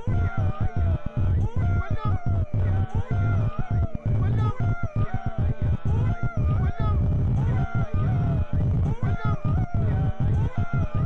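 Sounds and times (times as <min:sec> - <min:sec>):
dense low bass: 0:00.0 - 0:11.0.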